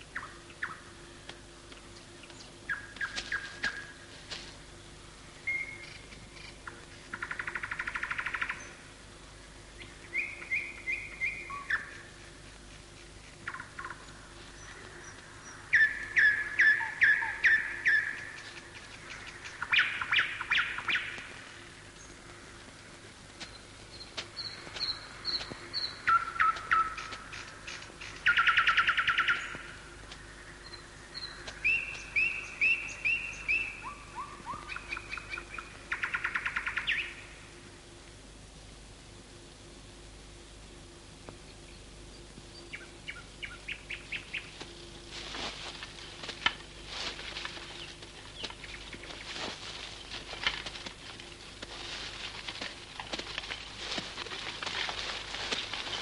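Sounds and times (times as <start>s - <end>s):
birds calling: 0.0s - 37.6s, 41.3s - 56.0s.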